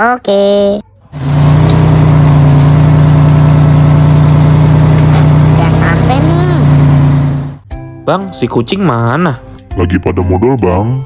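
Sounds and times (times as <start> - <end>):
bus engine humming: 1.2 - 7.6.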